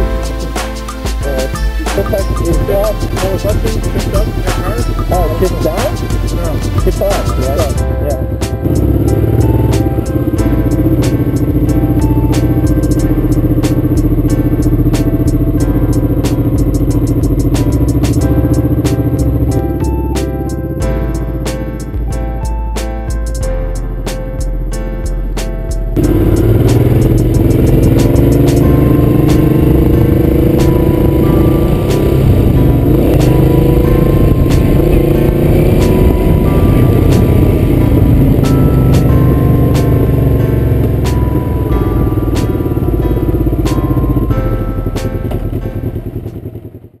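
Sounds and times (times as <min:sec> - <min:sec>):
background music: 0:00.0 - 0:46.6
motorcycle engine running: 0:01.2 - 0:22.5, 0:25.9 - 0:47.0.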